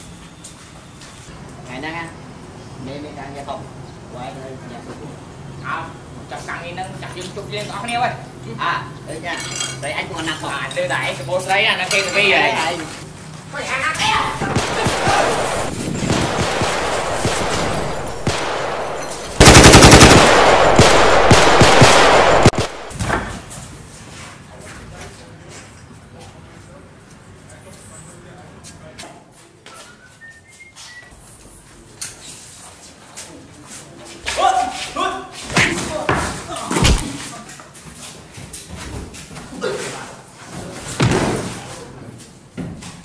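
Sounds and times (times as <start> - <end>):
automatic rifle fire: 14.2 - 23.0
hard blows and thuds: 36.7 - 37.2.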